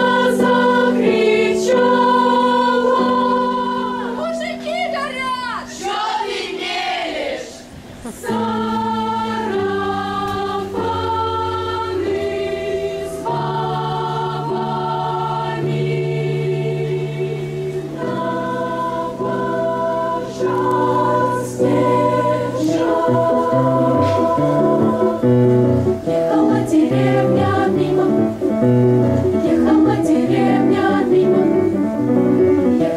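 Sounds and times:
children's choir singing: 0.0 - 32.0.

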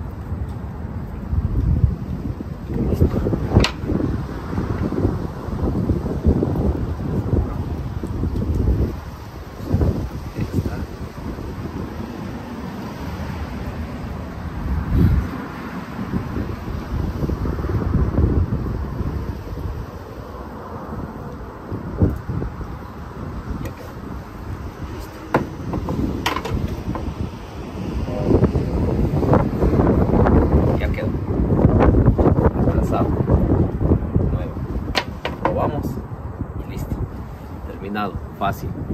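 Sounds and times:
wind rumbling on microphone: 0.0 - 38.9.

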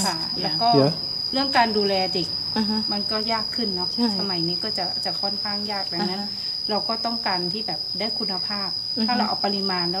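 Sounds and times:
person talking: 0.0 - 1.0, 2.6 - 3.1, 3.8 - 4.6, 5.8 - 6.4, 9.0 - 9.6
high-pitched insect drone: 0.0 - 10.0.

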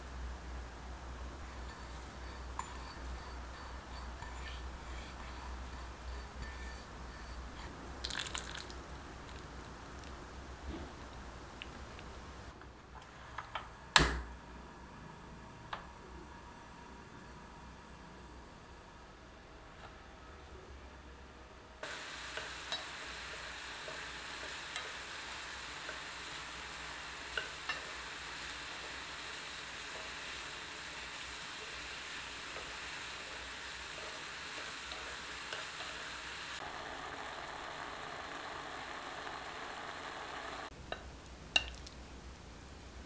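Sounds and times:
fruit sizzling in a saucepan: 1.2 - 10.4, 21.8 - 40.8.

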